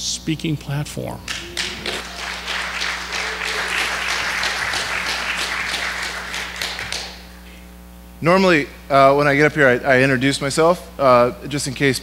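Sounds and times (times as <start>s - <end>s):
congregation applauding: 1.3s - 7.5s.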